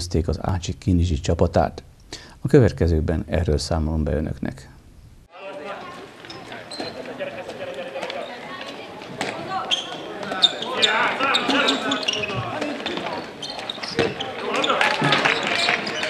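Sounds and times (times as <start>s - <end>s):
players calling out: 5.3s - 16.0s
ball bouncing on wooden floor: 13.9s - 14.2s.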